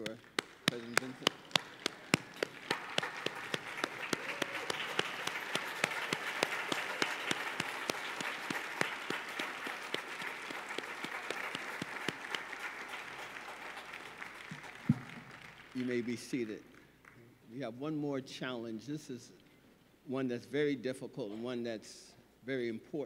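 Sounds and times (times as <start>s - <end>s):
close hands clapping steady beat: 0.0s - 17.1s
congregation applauding: 0.0s - 17.2s.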